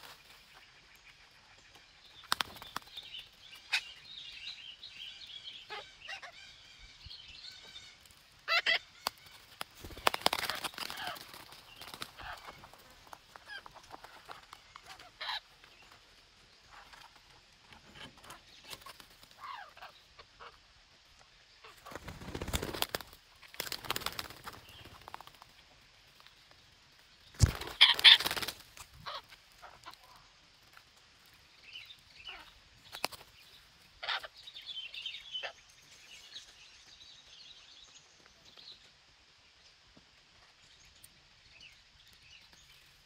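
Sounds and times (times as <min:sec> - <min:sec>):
parakeets flapping wings: 0:02.2 - 0:03.1, 0:08.5 - 0:15.4, 0:21.7 - 0:26.3, 0:27.4 - 0:29.2, 0:32.9 - 0:33.3
parakeet high calls: 0:05.6 - 0:06.7, 0:08.5 - 0:09.2, 0:27.7 - 0:28.3, 0:34.0 - 0:34.3.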